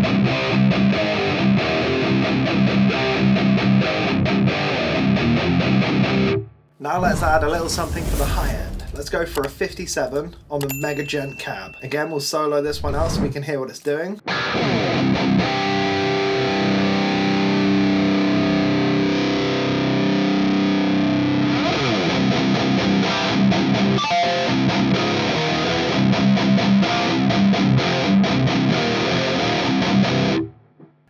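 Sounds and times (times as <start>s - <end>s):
distorted electric guitar: 14.3s - 30.6s.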